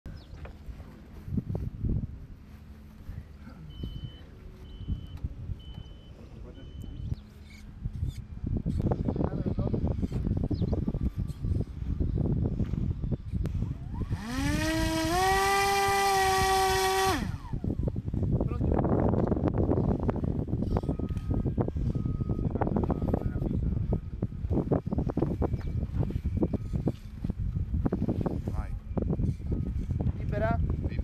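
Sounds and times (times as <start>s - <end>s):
drone propeller buzzing whine: 0.1s - 31.0s.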